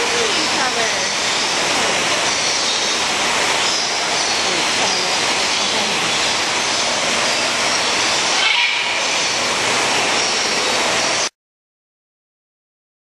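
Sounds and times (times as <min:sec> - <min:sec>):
loud steady rushing noise: 0:00.0 - 0:11.3.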